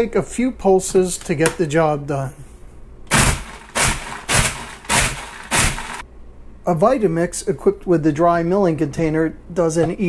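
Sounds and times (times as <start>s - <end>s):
food processor pulsing: 3.1s - 6.0s.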